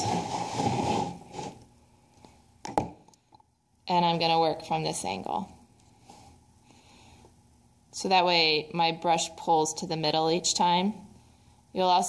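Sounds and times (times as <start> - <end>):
wooden board scraping on table: 0.0 - 1.6.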